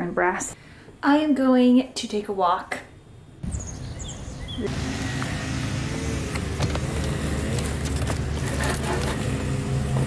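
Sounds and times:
low engine-like hum: 3.7s - 10.0s.

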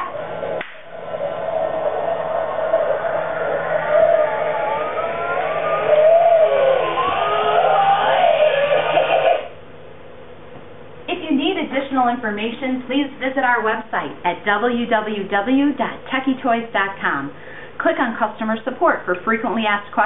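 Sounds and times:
music from speaker: 0.0s - 9.5s
motor humming: 0.0s - 9.6s
sharp clap: 0.6s - 0.9s.

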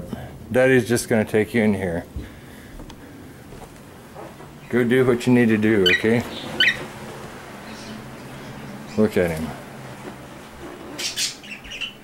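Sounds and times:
cockatiel chirps: 5.8s - 6.9s, 11.0s - 12.0s
cockatiel shrill calls: 6.6s - 6.9s.

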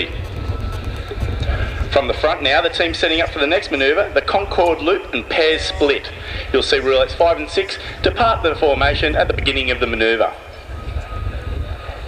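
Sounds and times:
turboprop planes flying overhead: 0.0s - 12.0s.

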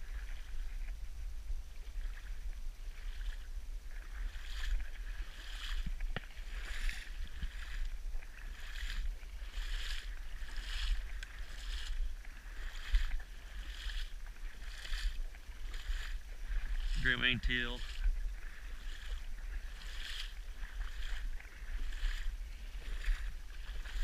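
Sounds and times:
steady low rumble: 0.0s - 24.0s
water swishing and splashing: 0.0s - 24.0s.

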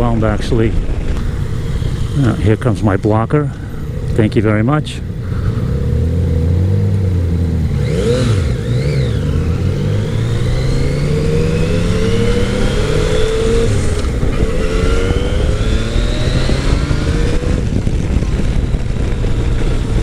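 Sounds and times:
motorcycle engine accelerating: 0.6s - 20.0s.

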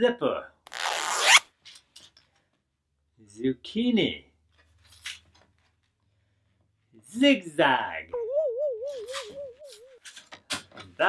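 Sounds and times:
plastic zipper zipping: 0.7s - 1.5s.

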